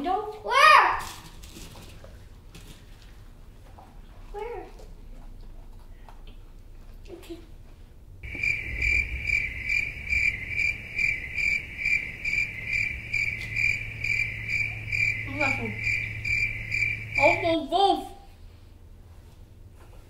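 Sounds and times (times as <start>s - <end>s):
low hum: 8.2s - 17.4s
cricket chirping: 8.2s - 17.6s.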